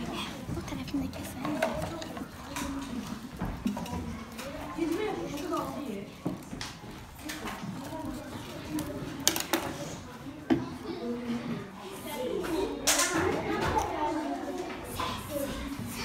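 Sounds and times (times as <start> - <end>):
children chattering: 0.0 - 16.0
objects clicking on a table: 8.7 - 9.8.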